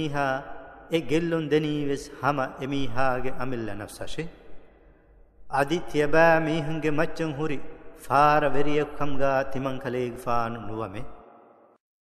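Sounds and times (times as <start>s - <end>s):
man reciting in a chant: 0.0s - 4.6s, 5.5s - 11.2s.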